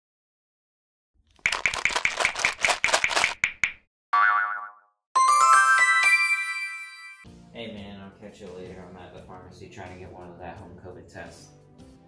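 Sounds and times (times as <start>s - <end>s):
boing sound effect: 4.2s - 4.9s
bright rising chime: 5.2s - 7.2s.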